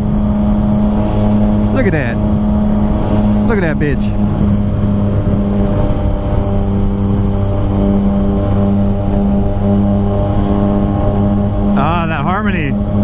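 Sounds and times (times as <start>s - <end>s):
motorcycle engine cruising: 0.0s - 13.0s
wind rush on microphone: 0.0s - 13.0s.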